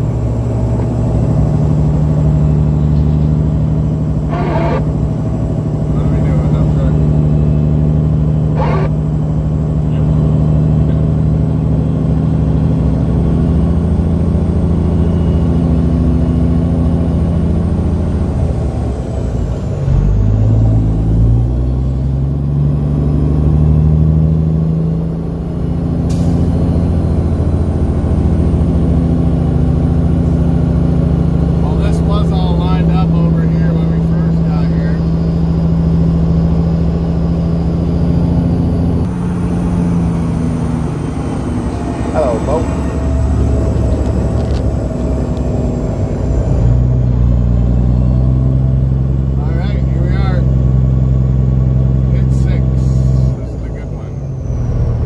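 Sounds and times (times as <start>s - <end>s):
truck diesel engine running: 0.0s - 55.0s.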